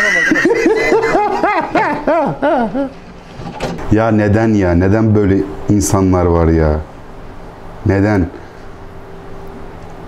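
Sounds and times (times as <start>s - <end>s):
man laughing: 0.0s - 3.0s.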